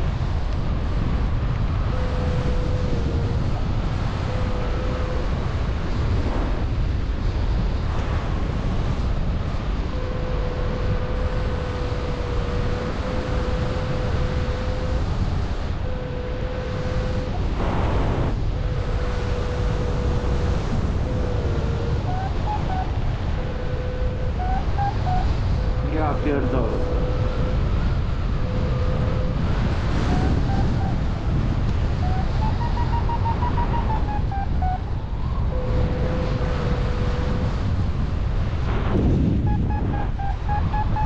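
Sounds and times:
wind buffeting microphone: 0.0 - 41.0
thin steady tone: 1.8 - 5.7, 9.8 - 31.2.

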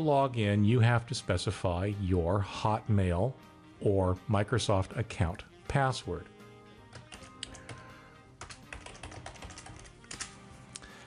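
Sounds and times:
soft background music: 0.0 - 11.0
keyboard keys clicking: 6.9 - 10.4.

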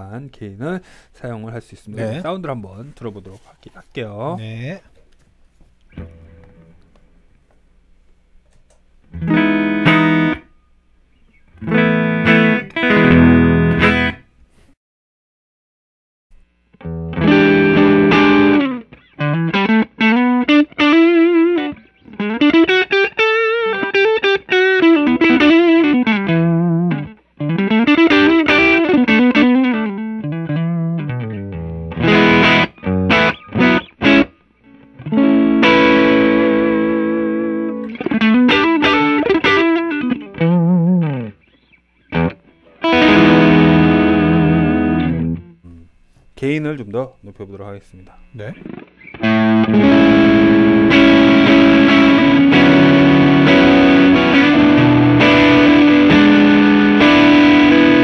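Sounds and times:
overdriven electric guitar: 5.8 - 7.6, 8.4 - 14.3, 16.4 - 46.2, 48.1 - 58.0.

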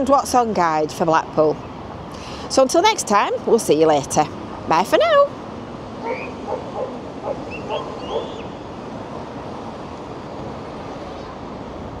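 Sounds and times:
street and seafront background noise: 0.0 - 12.0
short calls: 6.0 - 8.6.

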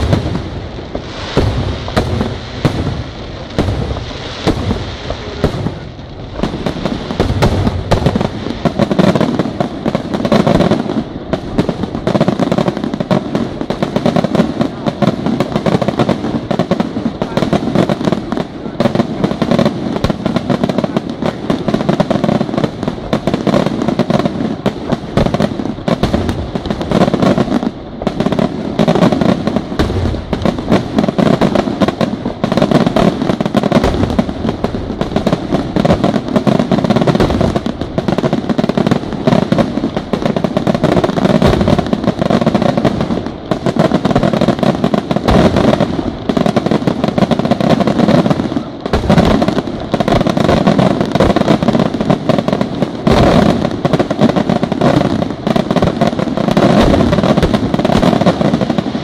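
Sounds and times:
firework shells bursting: 0.0 - 59.0.

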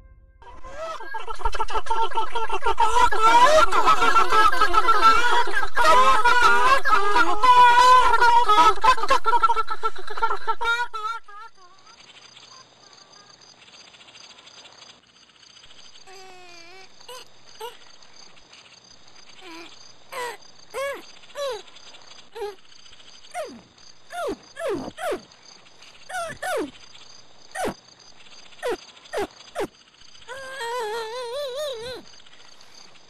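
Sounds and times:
faint steady background noise: 0.4 - 33.0
short pitched animal calls: 23.3 - 25.3, 26.0 - 26.8, 27.5 - 27.8, 28.6 - 32.1.

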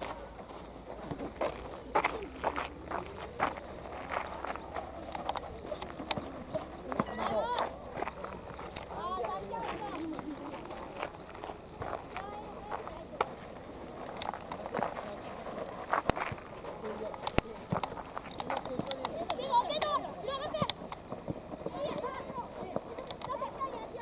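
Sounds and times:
children shouting: 5.4 - 8.2, 8.9 - 13.2, 19.2 - 20.8.

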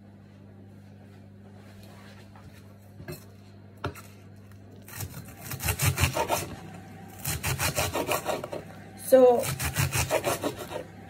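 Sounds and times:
knife on wooden chopping board: 4.9 - 6.6, 7.2 - 8.7, 9.4 - 10.9
knife slicing leek: 4.9 - 6.6, 7.2 - 8.7, 9.4 - 10.9.

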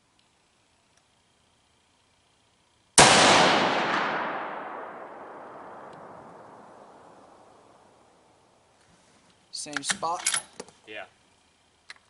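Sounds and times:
rifle shot echoing: 3.0 - 7.9.

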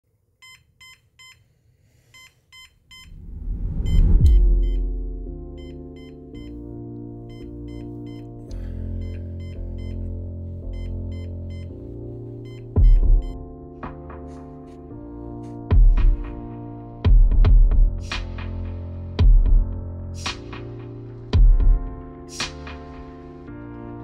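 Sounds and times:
digital alarm clock beeping: 0.4 - 1.4, 2.1 - 5.0, 5.6 - 6.6, 7.3 - 8.3, 9.0 - 10.1, 10.7 - 11.8, 12.4 - 13.4
music with deep sustained tones: 4.0 - 24.0.

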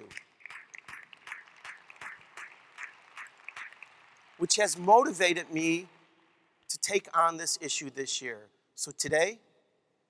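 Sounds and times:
man clapping hands: 0.0 - 5.9.

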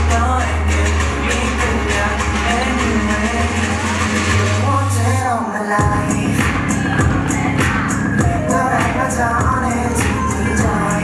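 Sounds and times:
gliding singing voice: 0.0 - 11.0
synth bass: 0.0 - 11.0.

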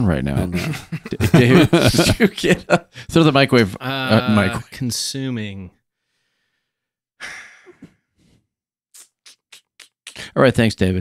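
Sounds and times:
person sighing: 7.2 - 7.9.

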